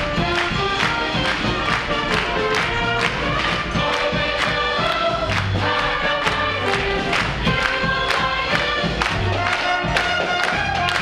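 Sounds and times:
chorus singing: 0.0s - 11.0s
instrumental accompaniment with beat: 0.0s - 11.0s.

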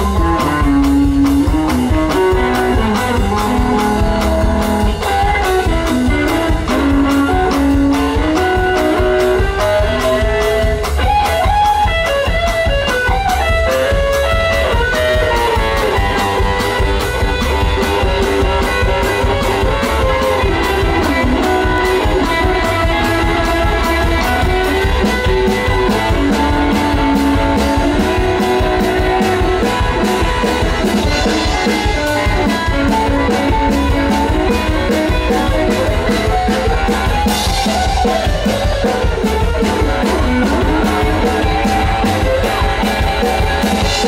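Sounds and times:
electric guitar lead: 0.0s - 44.0s
steady drum beat: 0.0s - 44.0s
upright bass: 0.0s - 44.0s.

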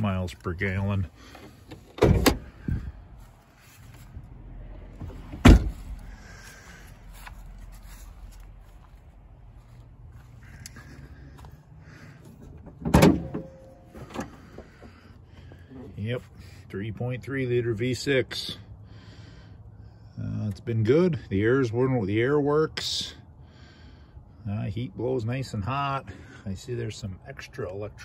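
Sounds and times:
hood release clunk: 1.3s - 2.8s, 12.3s - 15.0s
metal clunks with creak: 1.3s - 2.8s, 12.2s - 15.2s
car door slamming: 1.9s - 2.7s, 5.0s - 6.0s, 12.7s - 14.4s.

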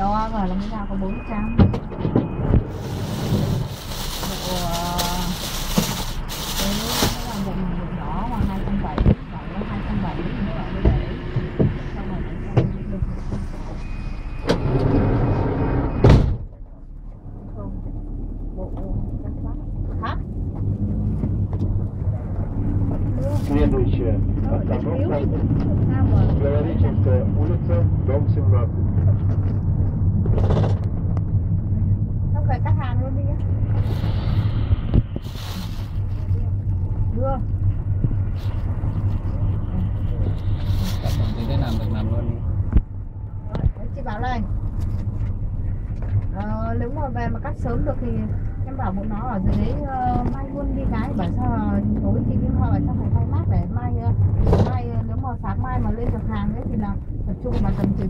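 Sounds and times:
bus engine drone: 0.0s - 58.0s
loud rushing noise: 1.9s - 16.4s, 20.6s - 46.0s
faint conversation: 21.8s - 29.6s, 36.2s - 58.0s.

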